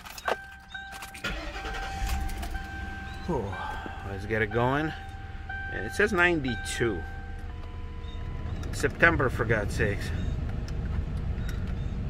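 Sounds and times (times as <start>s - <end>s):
ignition key click: 0.0s - 9.1s
car engine starting and running: 0.0s - 12.0s
electronic warning tone: 0.6s - 8.6s.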